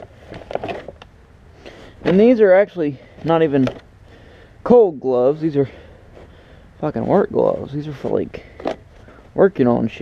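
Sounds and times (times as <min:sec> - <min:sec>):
feed rustling and scraping: 0:00.0 - 0:01.1, 0:01.7 - 0:03.9, 0:05.6 - 0:09.4.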